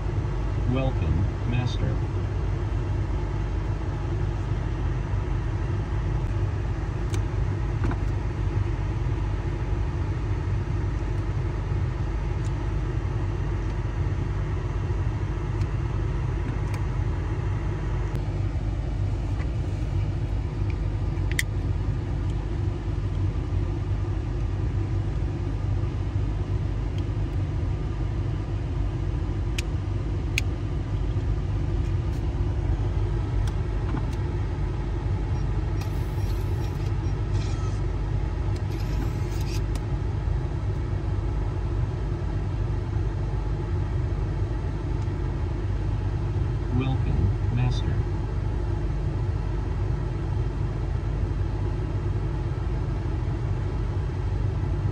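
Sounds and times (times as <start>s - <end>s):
car engine idling: 0.0s - 54.8s.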